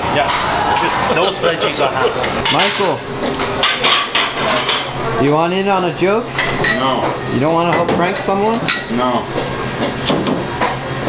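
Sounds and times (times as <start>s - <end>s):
kitchen pans and utensils clattering: 1.4s - 5.0s, 6.3s - 11.0s.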